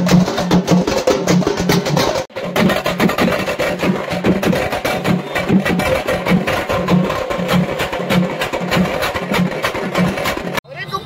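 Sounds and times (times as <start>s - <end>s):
fast stick drumming: 0.0s - 10.6s
low drum beat: 0.0s - 10.6s.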